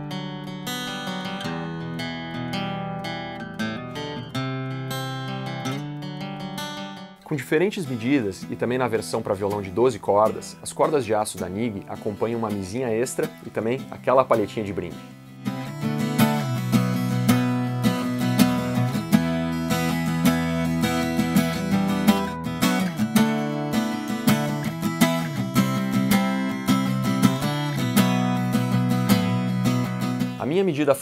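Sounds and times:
acoustic guitar strumming: 0:00.0 - 0:31.0.

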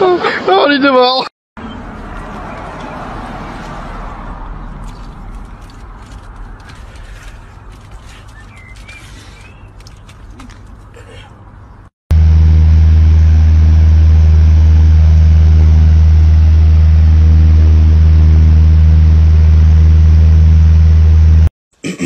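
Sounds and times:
loud buzzy low hum: 0:12.1 - 0:21.5.

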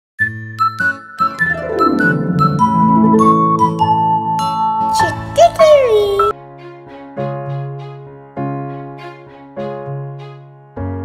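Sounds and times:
logo jingle music: 0:01.2 - 0:05.5.

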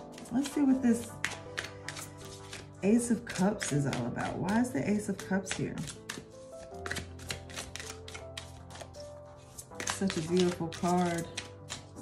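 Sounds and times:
cards being shuffled: 0:00.0 - 0:12.0
soft background music: 0:00.0 - 0:12.0.

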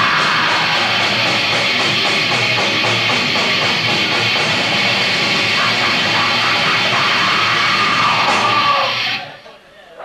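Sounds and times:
metal band playing live: 0:00.0 - 0:09.3.

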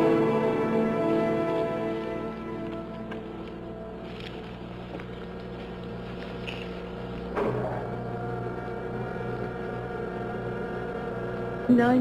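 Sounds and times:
electronic spaceship hum: 0:00.0 - 0:12.0.

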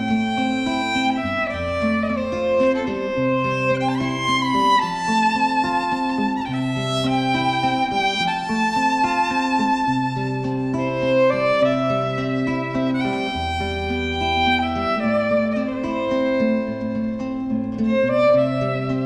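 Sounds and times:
acoustic guitar accompaniment: 0:00.0 - 0:19.0
violin slow melody: 0:00.0 - 0:19.0.

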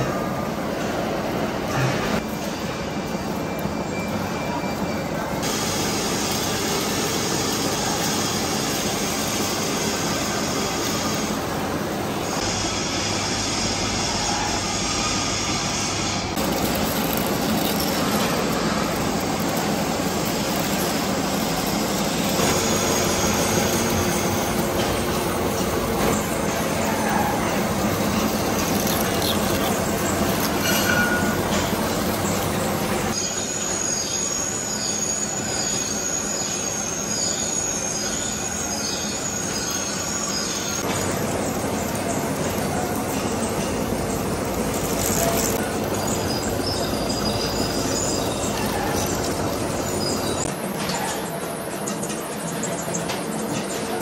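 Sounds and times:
lathe cutting steel: 0:05.4 - 0:34.7, 0:38.5 - 0:50.7.

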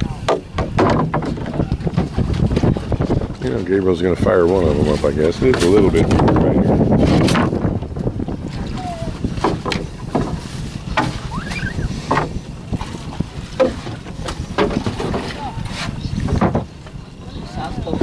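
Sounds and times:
wind buffeting microphone: 0:00.0 - 0:18.0
sharp knocks: 0:00.2 - 0:02.2, 0:12.1 - 0:12.4.

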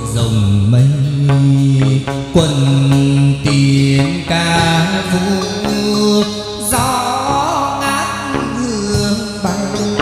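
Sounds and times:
man singing chant-like notes: 0:00.0 - 0:10.0.

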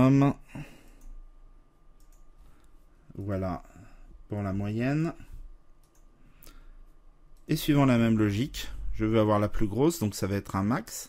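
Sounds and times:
computer mouse click: 0:02.0 - 0:03.3, 0:05.8 - 0:06.6.

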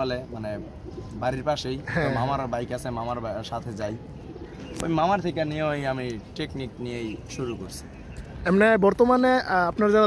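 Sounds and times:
pigeons cooing faintly: 0:00.0 - 0:08.7.

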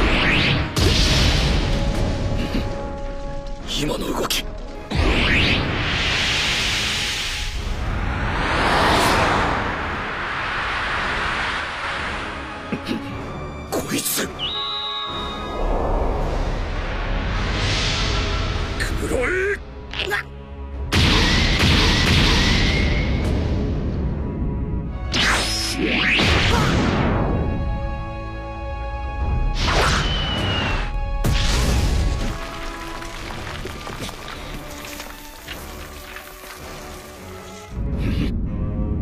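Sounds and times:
music: 0:00.0 - 0:39.0.

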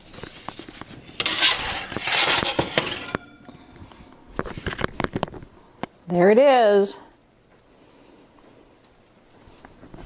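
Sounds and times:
wooden peel scraping baking stone: 0:00.5 - 0:03.2.

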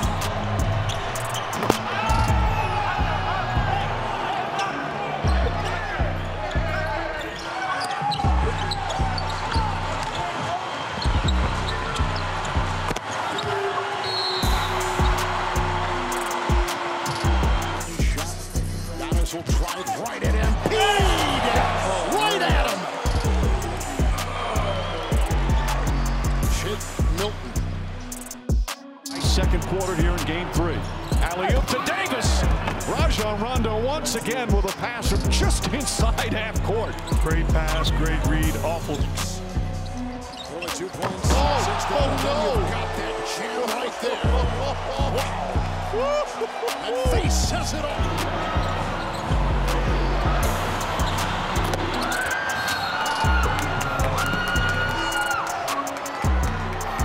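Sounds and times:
background music with beat: 0:00.0 - 0:04.2, 0:14.4 - 0:57.0.

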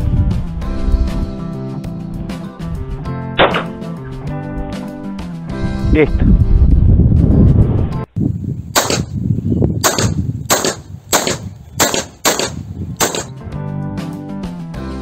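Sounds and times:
background music: 0:00.0 - 0:08.1, 0:12.2 - 0:15.0
pistol shots: 0:03.4 - 0:03.8, 0:08.8 - 0:09.1, 0:09.8 - 0:13.3.

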